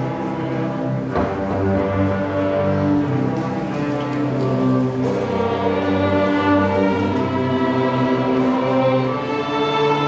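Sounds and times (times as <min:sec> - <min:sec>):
orchestra playing held chords: 0:00.0 - 0:10.0.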